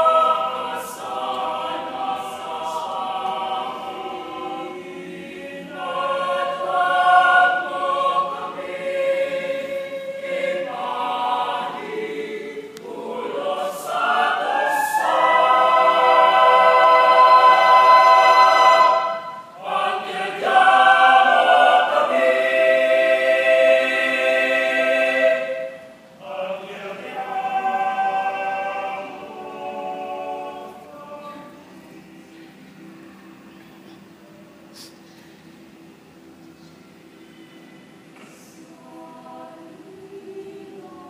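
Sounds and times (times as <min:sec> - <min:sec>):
choir singing a cappella: 0:00.0 - 0:35.0, 0:35.6 - 0:41.0.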